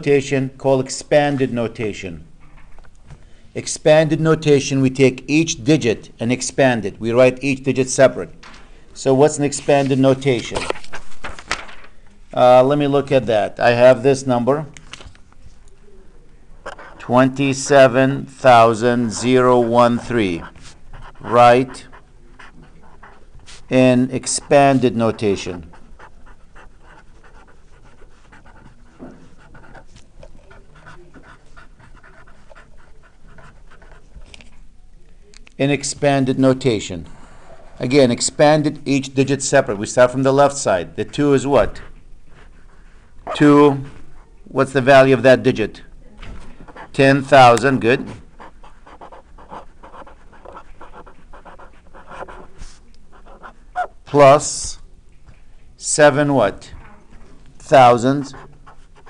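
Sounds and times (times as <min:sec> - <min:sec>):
marker scratching on paper: 0:16.7 - 0:34.5, 0:46.6 - 0:54.2, 0:57.6 - 0:59.0.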